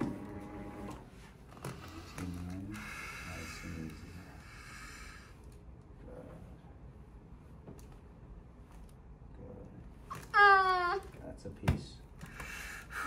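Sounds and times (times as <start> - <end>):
woman groaning and moaning: 10.2 - 11.1.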